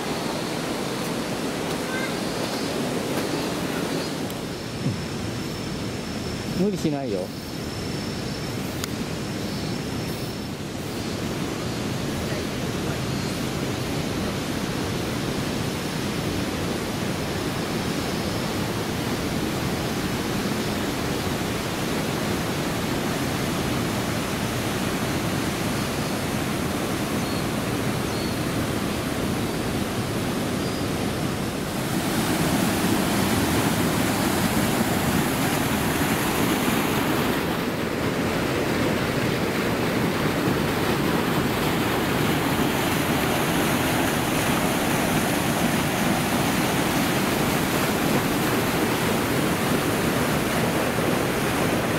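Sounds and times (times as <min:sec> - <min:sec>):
river water over rocks: 0:00.0 - 0:51.9.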